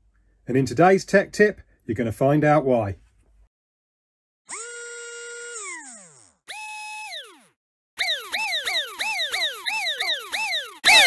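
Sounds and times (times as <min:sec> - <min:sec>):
electronic tones sliding down: 0:05.9 - 0:11.0
repeating electronic chirps: 0:08.0 - 0:11.0.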